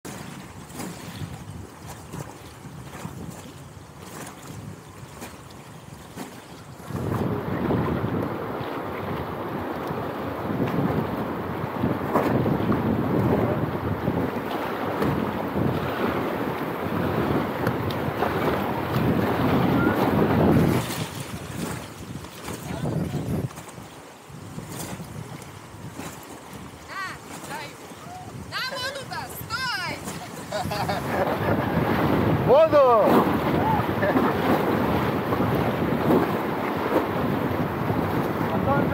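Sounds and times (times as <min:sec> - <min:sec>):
wind buffeting microphone: 0:00.1 - 0:38.9
river water rushing: 0:11.3 - 0:38.9.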